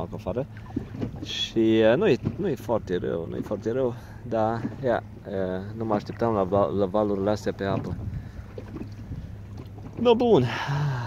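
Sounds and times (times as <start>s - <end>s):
choppy water around boat: 0.0s - 11.0s
wind rumbling on microphone: 6.0s - 10.2s.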